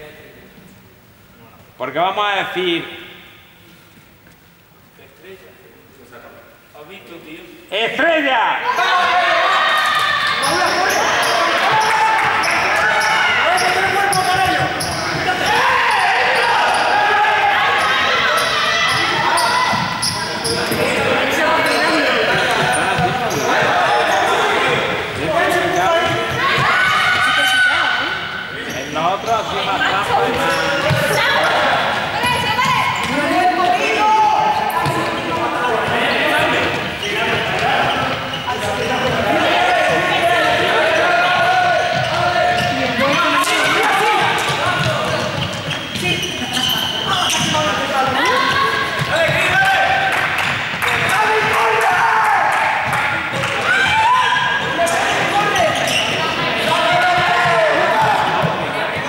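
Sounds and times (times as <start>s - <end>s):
young people shouting and chatting: 0.0s - 59.0s
basketballs bouncing on floor: 11.2s - 16.0s, 21.9s - 23.7s, 26.0s - 27.6s, 30.1s - 31.6s, 40.8s - 51.7s, 55.1s - 59.0s.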